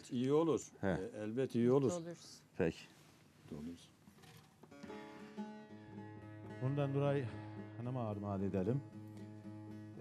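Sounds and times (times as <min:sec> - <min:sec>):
plucked saz strings ringing: 0:04.3 - 0:10.0.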